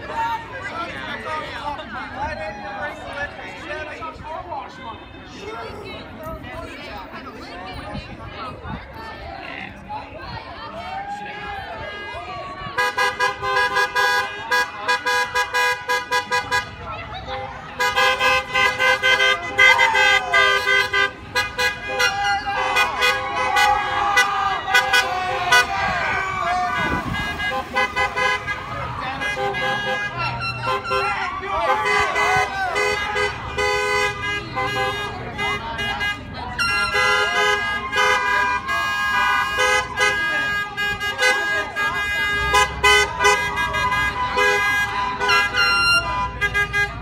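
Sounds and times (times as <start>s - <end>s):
people shouting and cheering: 0.0s - 47.0s
car horns honking: 11.5s - 47.0s.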